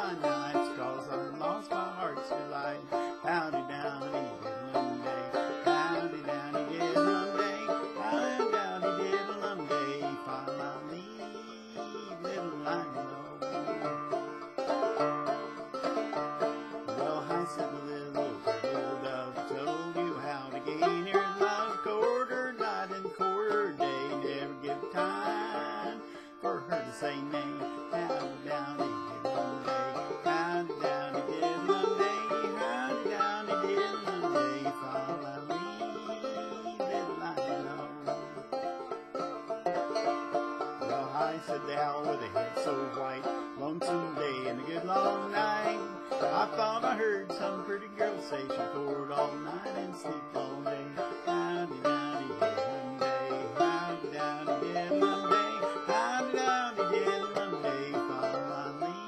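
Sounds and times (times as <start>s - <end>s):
man singing: 0.0s - 38.5s, 40.2s - 59.0s
banjo playing: 0.0s - 59.0s.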